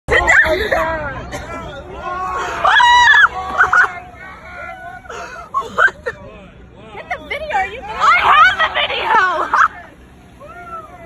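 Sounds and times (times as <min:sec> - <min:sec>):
people talking excitedly: 0:00.1 - 0:11.0.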